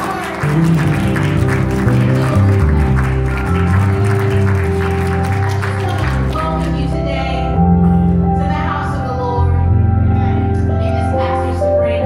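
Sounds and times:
worship band music: 0.0 - 12.0
strong bass line: 0.4 - 8.7.

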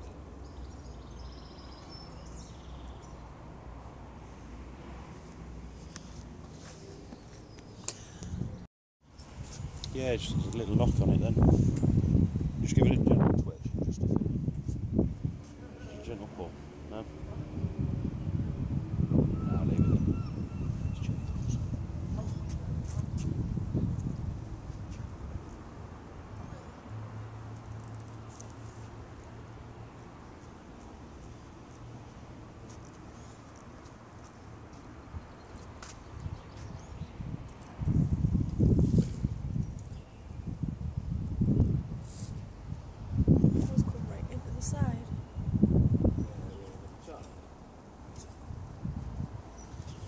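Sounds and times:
wind buffeting microphone: 9.4 - 15.5, 17.1 - 25.7, 36.1 - 47.2, 48.3 - 50.0.

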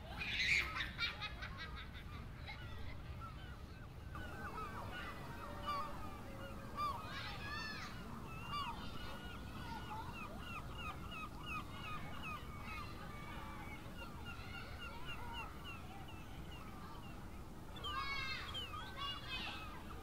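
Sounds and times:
birds calling: 2.7 - 20.0.

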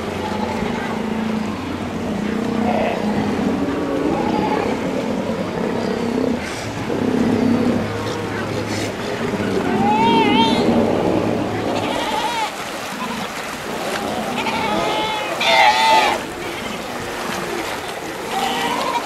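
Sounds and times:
indistinct voices: 0.0 - 19.0
motorboat engine humming: 0.0 - 19.0.

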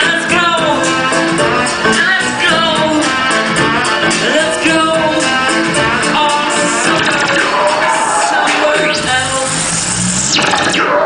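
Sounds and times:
synthesizer electronic music: 0.0 - 11.0.

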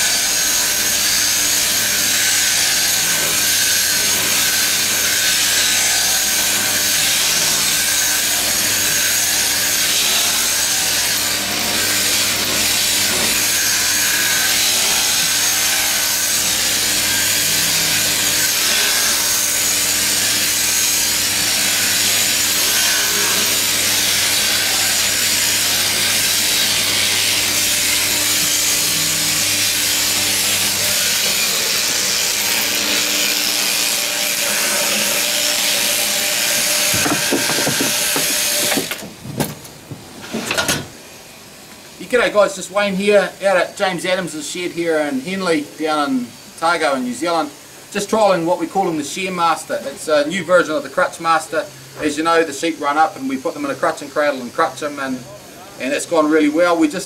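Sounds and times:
electric shears buzzing: 0.0 - 39.6
knocks: 36.6 - 40.9.

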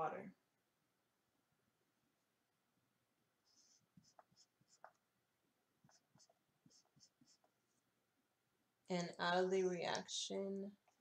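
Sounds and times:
marker scratching on paper: 3.4 - 5.0, 5.8 - 7.8.

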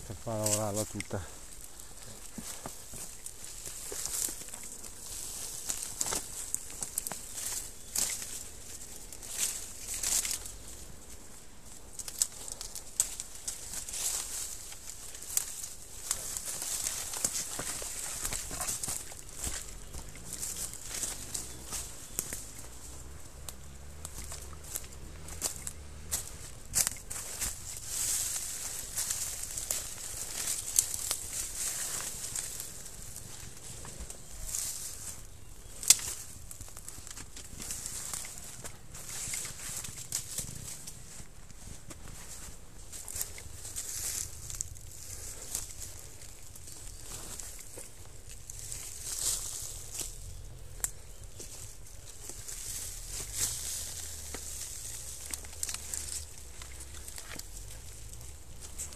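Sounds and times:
leaves and branches rustling: 0.0 - 58.9.

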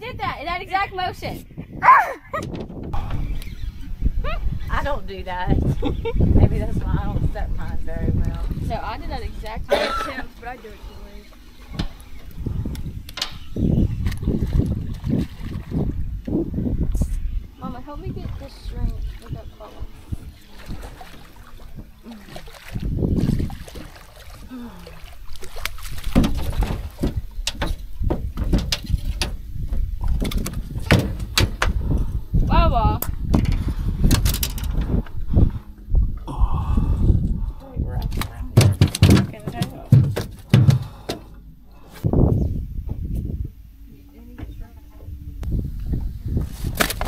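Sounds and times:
voices: 0.0 - 2.4, 4.1 - 12.3, 16.8 - 21.1, 32.4 - 33.1, 36.3 - 41.4, 43.7 - 45.6
knocks and thumps on boat deck: 2.3 - 3.3, 11.6 - 16.9, 25.4 - 36.1, 37.9 - 41.4.

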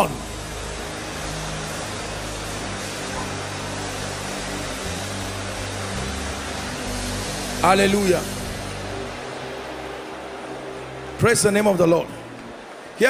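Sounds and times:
low keyboard chords: 0.0 - 13.0.

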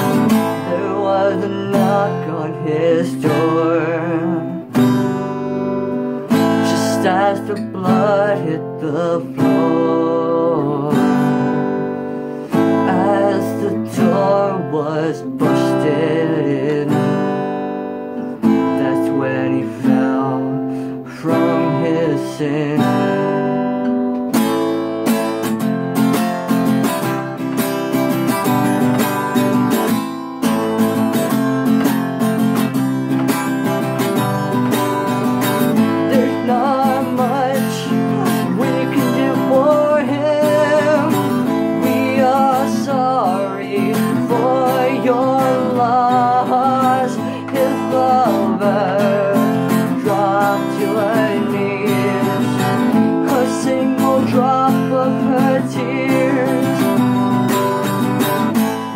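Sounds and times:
person singing: 0.0 - 5.4, 6.0 - 24.0, 30.6 - 58.9
acoustic guitar strumming: 0.0 - 58.9.

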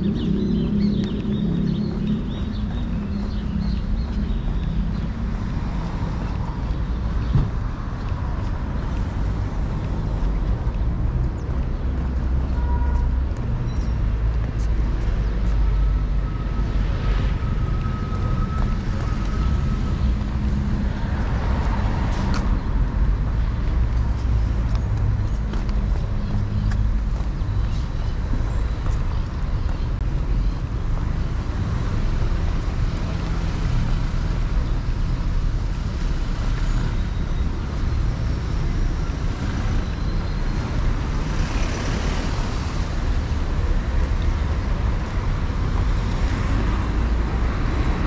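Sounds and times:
road traffic rumble: 0.0 - 48.0.

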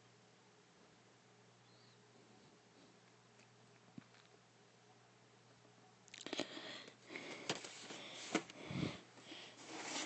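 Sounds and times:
breathing and sniffing: 6.3 - 10.0.

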